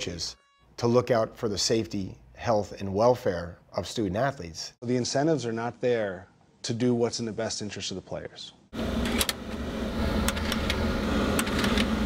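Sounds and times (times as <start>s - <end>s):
disc tray mechanical hum: 8.8s - 12.0s.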